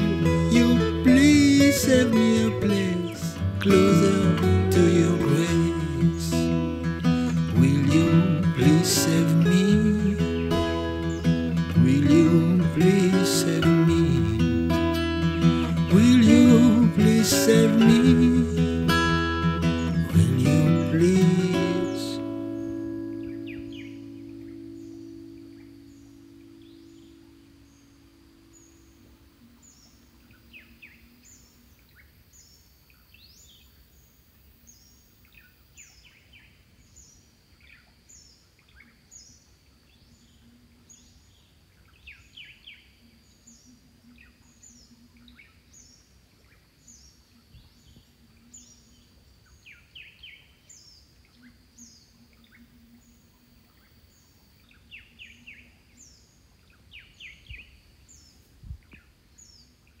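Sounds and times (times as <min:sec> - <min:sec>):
lower bird chirps: 0:00.0 - 1:00.0.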